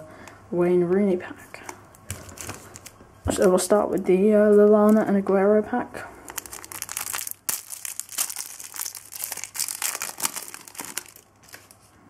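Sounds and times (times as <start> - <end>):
foil wrapper tearing and crinkling: 6.2 - 11.8.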